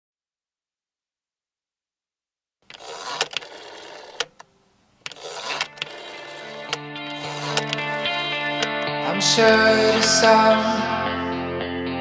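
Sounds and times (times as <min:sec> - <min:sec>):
dense clicking mechanical noise: 0:02.6 - 0:08.8.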